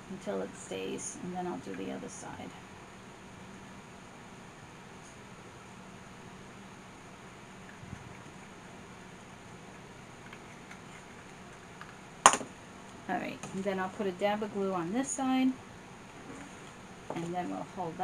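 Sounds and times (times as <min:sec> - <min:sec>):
low room hum: 0:00.0 - 0:18.0.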